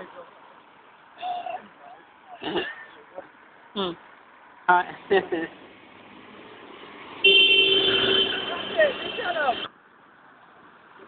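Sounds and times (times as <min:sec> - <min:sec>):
vehicle horn blast: 0:07.2 - 0:09.7.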